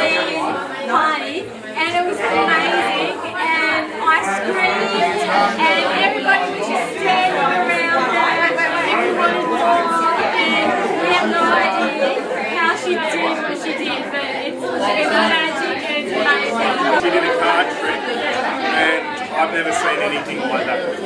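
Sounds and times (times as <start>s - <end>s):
party chatter of voices: 0.0s - 21.0s.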